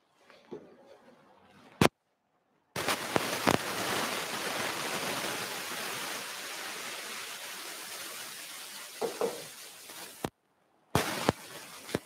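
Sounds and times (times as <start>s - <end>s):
steady rushing static hiss: 2.8s - 12.0s.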